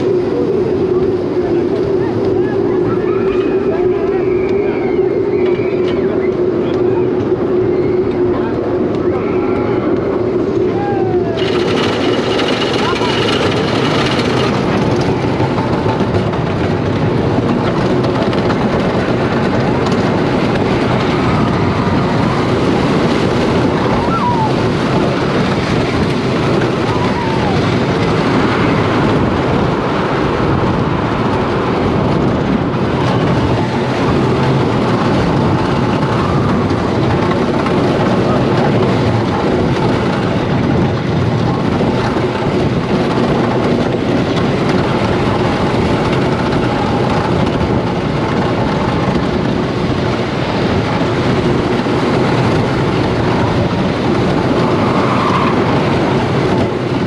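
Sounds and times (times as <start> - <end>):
roller coaster rattling on track: 0.0 - 57.0.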